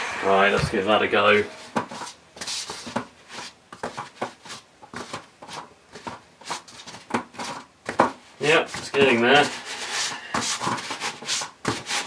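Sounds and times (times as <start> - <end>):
hands rubbing foam: 8.4 - 12.0.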